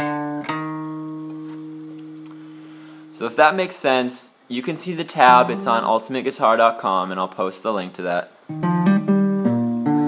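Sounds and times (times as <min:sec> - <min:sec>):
acoustic guitar notes and chord: 0:00.0 - 0:03.2, 0:05.2 - 0:06.2, 0:08.5 - 0:10.0.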